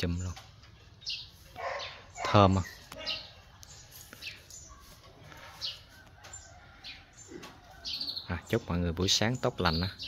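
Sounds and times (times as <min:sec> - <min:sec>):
faint outdoor background: 0:00.0 - 0:10.0
small birds chirping: 0:00.0 - 0:10.0.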